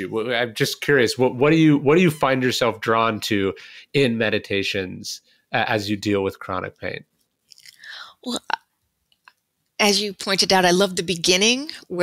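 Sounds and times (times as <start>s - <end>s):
woman speaking: 7.6s - 8.6s, 9.8s - 12.0s.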